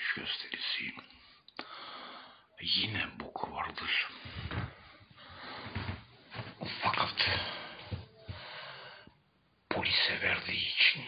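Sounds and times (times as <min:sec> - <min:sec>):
person whispering: 0:00.0 - 0:01.2, 0:02.5 - 0:04.5, 0:06.6 - 0:08.1, 0:09.7 - 0:11.0.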